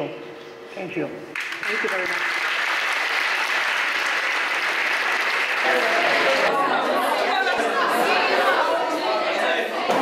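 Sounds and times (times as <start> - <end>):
crowd chattering in large room: 0.0 - 10.0
applause: 1.3 - 6.5.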